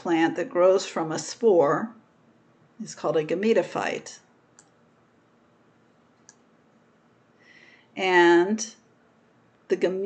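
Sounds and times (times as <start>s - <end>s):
faint clicks: 4.5s - 4.8s
short breath in: 7.4s - 7.9s.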